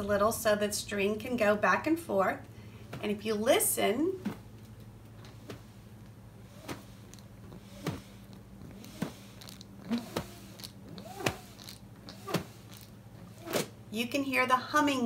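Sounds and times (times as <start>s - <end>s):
button whirligig humming: 2.4s - 14.1s.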